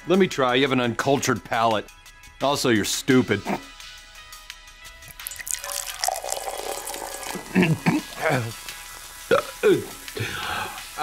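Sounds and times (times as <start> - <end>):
short throaty vocal noises: 3.4 - 3.8
sipping soda from can: 5.1 - 10.2.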